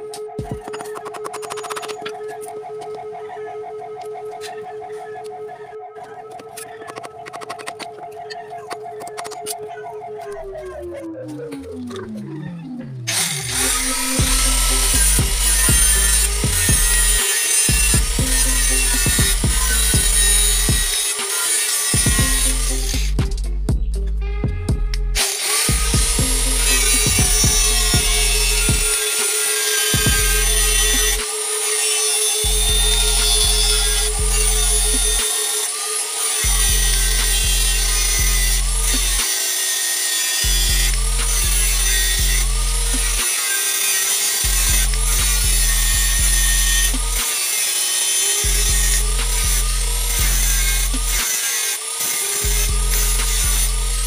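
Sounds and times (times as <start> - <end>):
music with heavy bass beat: 12.8 - 21.0, 21.9 - 29.0, 29.9 - 31.2, 32.5 - 35.2, 36.5 - 39.2, 40.4 - 43.2, 44.4 - 47.3, 48.4 - 51.2, 52.4 - 54.0
angle grinder grinding metal: 13.1 - 23.2, 25.2 - 54.0.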